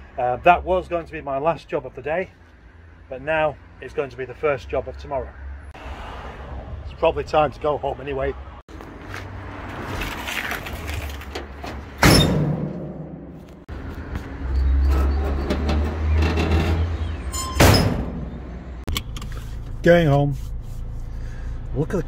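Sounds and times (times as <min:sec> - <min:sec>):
knocks and handling noise: 0:08.7 - 0:14.4
door slamming: 0:11.4 - 0:13.4, 0:15.6 - 0:18.6.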